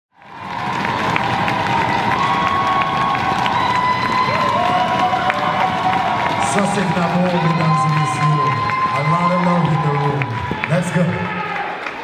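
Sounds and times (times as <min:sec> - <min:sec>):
people clapping: 0:00.1 - 0:12.0
audience cheering: 0:00.2 - 0:12.0
high held shouts: 0:01.4 - 0:11.8.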